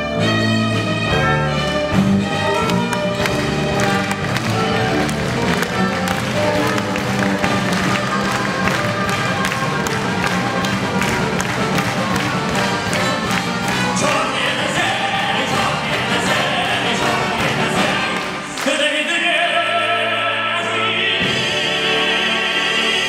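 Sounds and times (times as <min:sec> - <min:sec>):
violins holding notes: 0:00.2 - 0:23.0.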